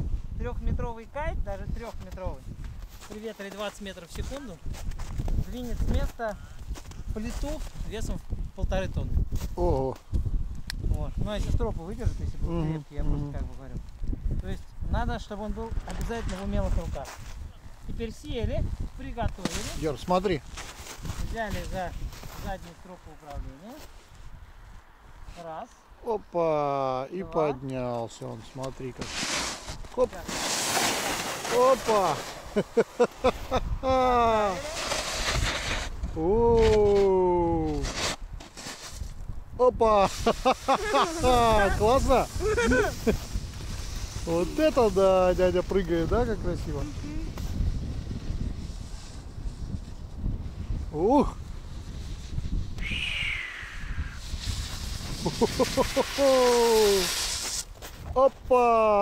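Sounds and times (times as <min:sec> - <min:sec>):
wind on microphone: 0:00.0 - 0:03.1, 0:04.1 - 0:25.3, 0:31.7 - 0:58.5
steady hiss: 0:28.2 - 0:36.1, 0:39.9 - 0:57.8
person exclaiming: 0:33.3 - 0:34.8, 0:36.2 - 0:37.7, 0:40.7 - 0:41.8, 0:42.4 - 0:43.0, 0:55.4 - 0:57.1, 0:58.5 - 0:59.0.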